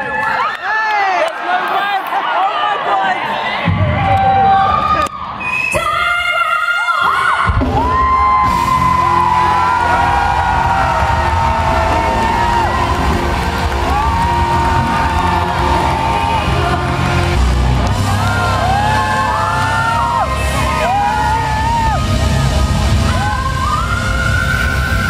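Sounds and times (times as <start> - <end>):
crowd cheering and whooping: 0.0 - 25.0
singer holding long notes: 8.8 - 25.0.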